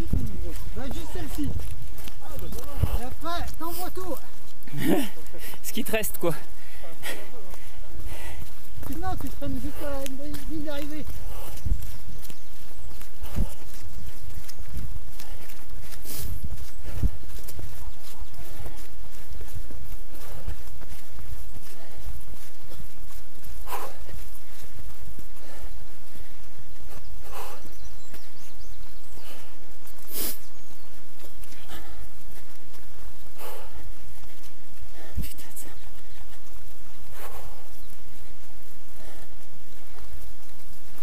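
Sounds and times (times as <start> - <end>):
wind rumble: 0.0 - 5.6, 7.6 - 29.9
footsteps on dirt path: 0.0 - 41.0.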